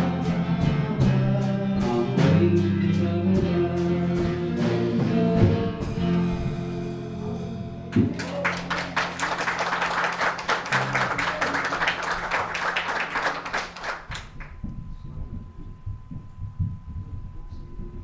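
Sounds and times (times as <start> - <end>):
congregation applauding: 7.9 - 14.6.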